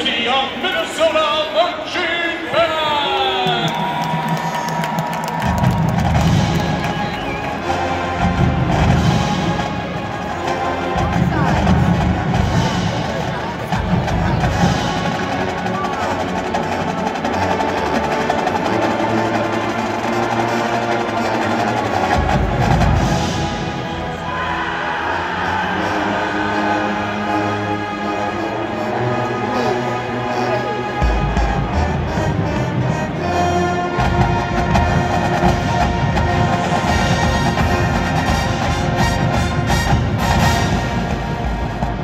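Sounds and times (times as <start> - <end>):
announcer voice over loudspeaker: 0.0 - 4.2, 10.2 - 17.9
brass fanfare chords: 16.9 - 42.0.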